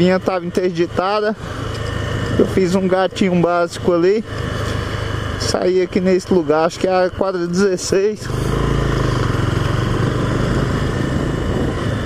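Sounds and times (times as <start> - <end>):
small motorcycle engine running: 0.0 - 12.0.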